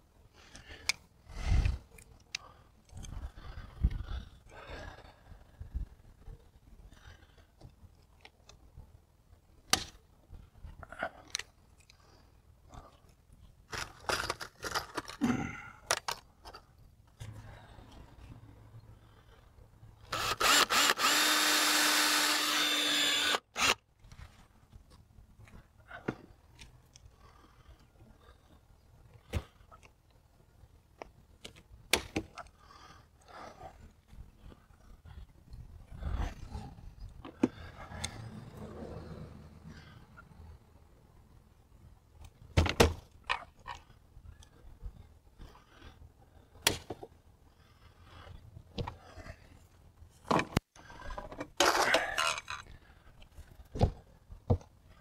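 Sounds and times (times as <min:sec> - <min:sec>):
cordless drill running: 0:20.1 - 0:23.8.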